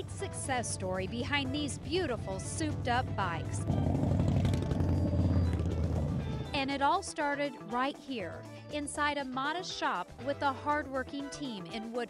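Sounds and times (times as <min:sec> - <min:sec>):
motorcycles riding past: 0:01.2 - 0:06.8.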